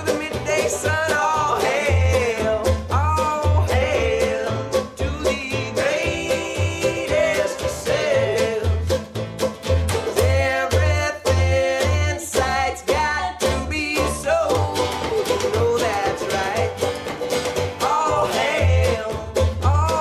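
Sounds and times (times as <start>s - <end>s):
man singing: 0.0s - 9.0s, 10.0s - 16.9s, 17.8s - 20.0s
picked banjo: 0.0s - 20.0s
strummed guitar: 0.0s - 20.0s
upright bass plucking: 0.0s - 20.0s.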